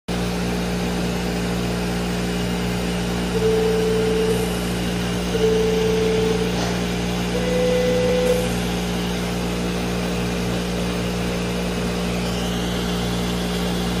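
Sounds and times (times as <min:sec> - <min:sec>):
low mechanical hum: 0:00.1 - 0:14.0
electronic beep tones: 0:03.4 - 0:04.5, 0:05.3 - 0:06.6, 0:07.3 - 0:08.6.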